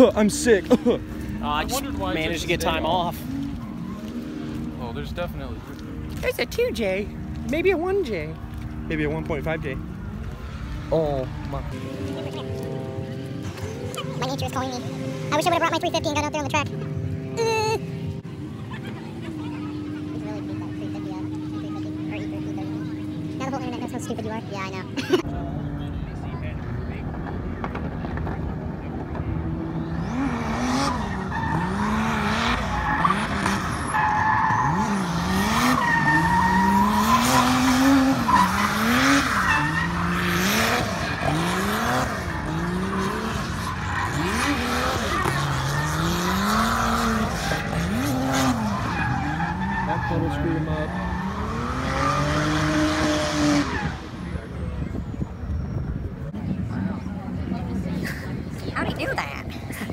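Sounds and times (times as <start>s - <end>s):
car engine revving: 0.0s - 54.9s
tyre squeal: 29.8s - 55.9s.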